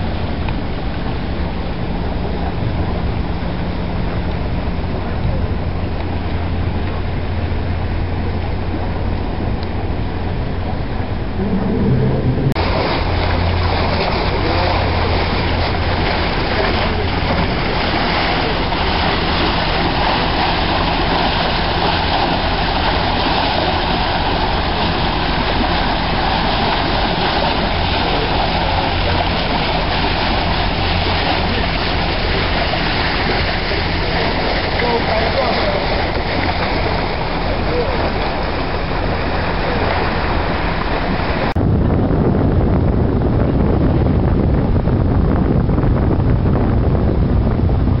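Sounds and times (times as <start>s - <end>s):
boat motor running: 0.0s - 48.0s
water rushing along hull: 0.0s - 48.0s.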